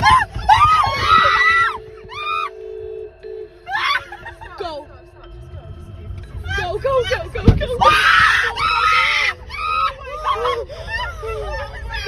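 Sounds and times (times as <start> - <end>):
woman screaming: 0.0 - 2.5, 7.8 - 12.0
steady humming tone: 0.0 - 12.0.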